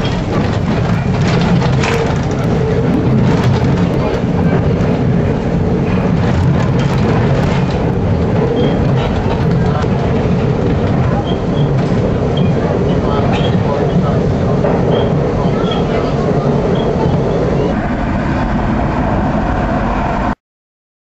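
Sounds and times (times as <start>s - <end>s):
subway train rumble: 0.0s - 20.4s.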